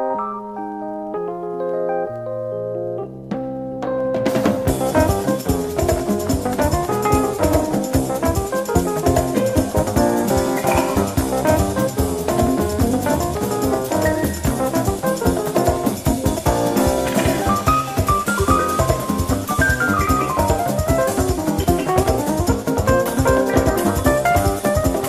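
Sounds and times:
big band jazz with drum kit: 3.3 - 25.0.

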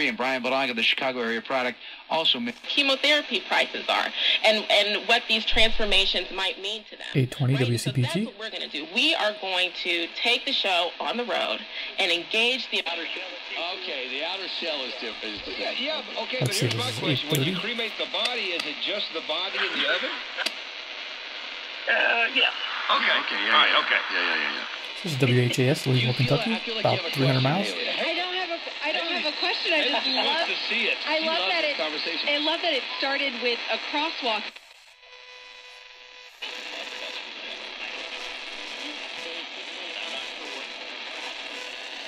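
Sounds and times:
radio hiss: 0.0 - 8.4, 9.9 - 34.5, 35.3 - 42.0
voice on radio: 7.0 - 8.3, 16.4 - 17.9, 24.8 - 28.1.

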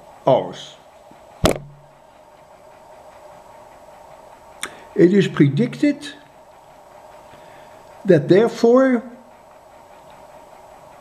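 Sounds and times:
faint room hum: 0.0 - 11.0
mouth clicks: 4.6 - 4.9
man speaking: 5.0 - 6.2, 8.1 - 9.2.

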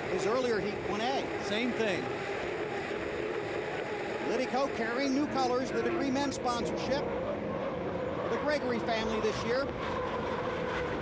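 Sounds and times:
turbine engine steady tone: 0.0 - 11.0.

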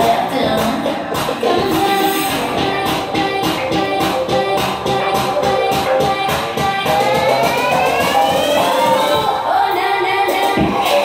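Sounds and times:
dance-pop track: 0.0 - 11.0
tone sweeping upward: 2.2 - 9.3.

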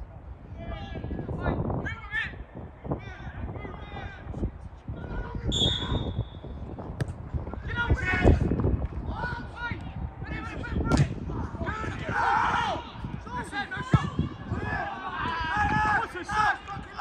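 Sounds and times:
referee's whistle blast: 5.5 - 6.4
ball being kicked: 7.0 - 7.2, 10.9 - 11.2
players and spectators shouting: 9.1 - 17.0.

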